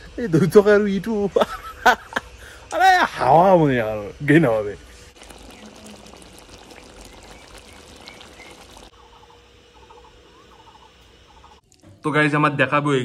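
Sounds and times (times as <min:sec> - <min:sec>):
curry bubbling in a pan: 0:05.1 - 0:09.0.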